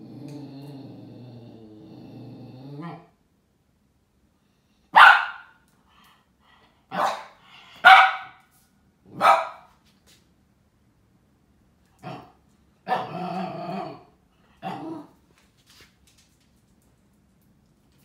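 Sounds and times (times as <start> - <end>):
dog barking: 4.9 - 5.6, 6.9 - 8.4, 9.1 - 9.7.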